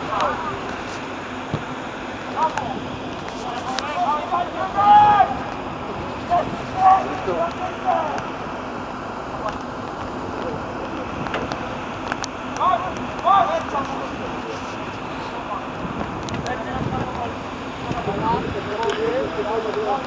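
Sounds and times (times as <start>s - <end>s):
players shouting: 0.0s - 11.2s, 11.8s - 15.7s.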